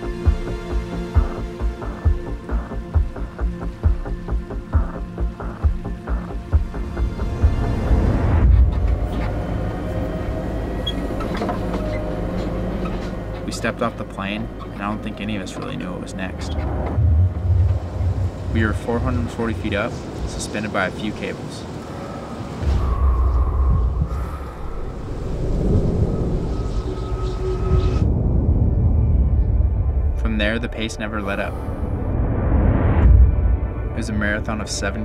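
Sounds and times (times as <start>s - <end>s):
cable car wheels rumbling: 6.5s - 28.6s
faint whine: 8.4s - 32.2s.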